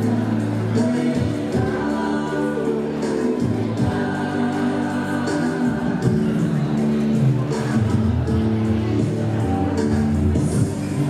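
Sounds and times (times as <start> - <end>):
choir singing long held notes: 0.0 - 7.0.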